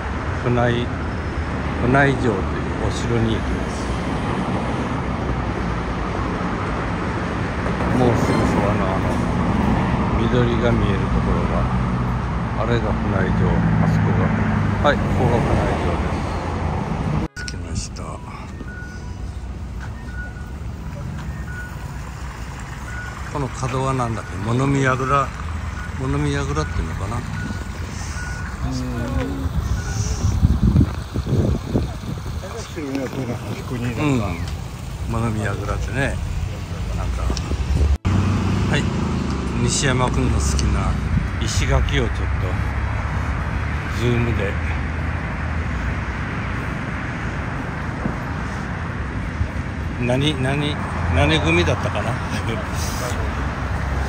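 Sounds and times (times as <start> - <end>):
road traffic rumble: 0.0 - 54.0
short high beep: 17.3 - 20.6.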